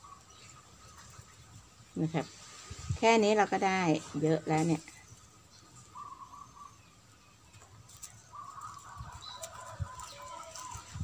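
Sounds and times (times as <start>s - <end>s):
bird calling faintly: 0.0s - 11.0s.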